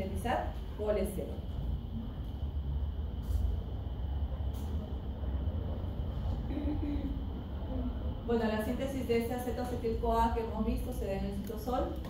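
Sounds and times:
faint high whine: 0.0 - 12.0
steady low rumble: 0.0 - 12.0.

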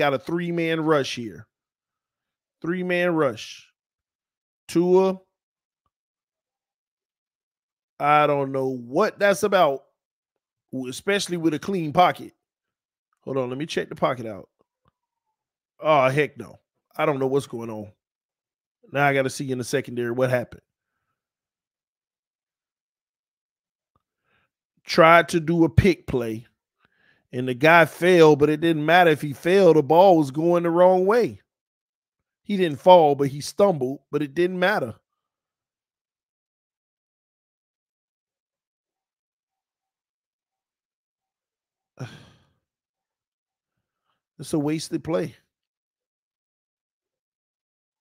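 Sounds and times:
man sighing: 42.0 - 42.6.

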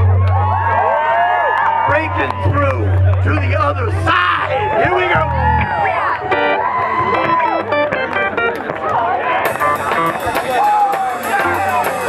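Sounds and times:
electric guitar notes: 1.8 - 8.8, 9.4 - 12.0
rock band playing: 1.8 - 12.0
people shouting: 9.2 - 12.0
cymbal beat: 9.5 - 12.0.

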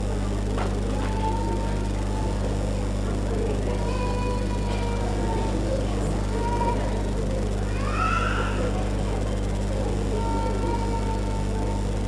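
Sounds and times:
electrical hum from sound system: 0.0 - 12.0
low murmur: 0.0 - 12.0.

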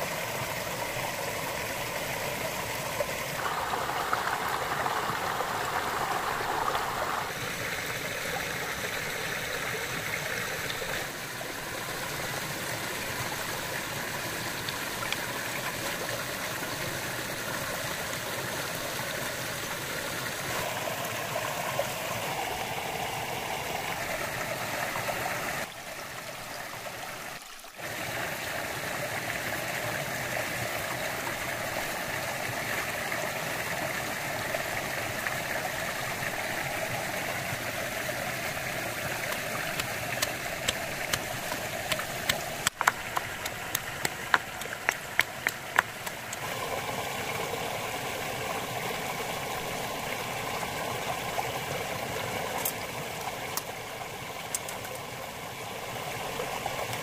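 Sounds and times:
stream rushing over rocks: 0.0 - 57.0.

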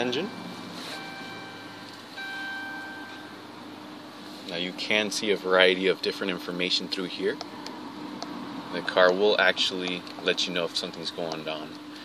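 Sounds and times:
electronic warning chime: 0.0 - 3.5
car engine idling: 0.0 - 12.0.

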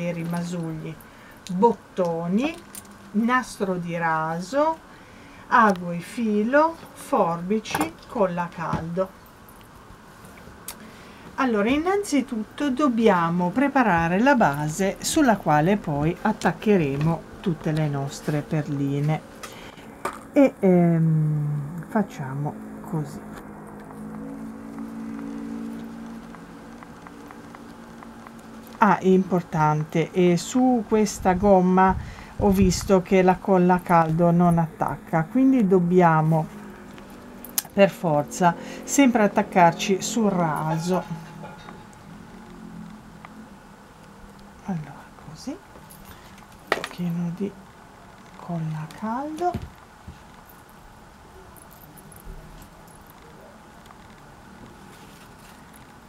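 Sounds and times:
low steady background: 0.0 - 56.0
steady low hum: 0.0 - 56.0.

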